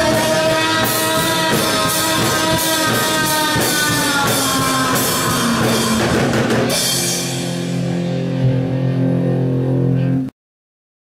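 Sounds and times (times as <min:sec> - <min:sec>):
drum kit and cymbals crashing: 0:00.0 - 0:08.6
electric guitar and bass chord: 0:00.0 - 0:10.4.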